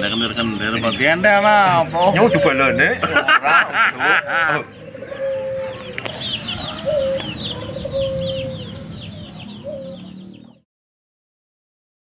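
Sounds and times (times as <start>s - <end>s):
chicks peeping: 0.0s - 3.1s, 4.2s - 10.6s
hen clucking: 0.0s - 10.6s.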